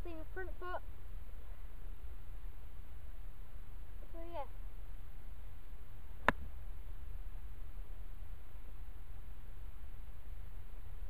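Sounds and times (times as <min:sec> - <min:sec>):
golf club striking ball: 0:06.2 - 0:06.4.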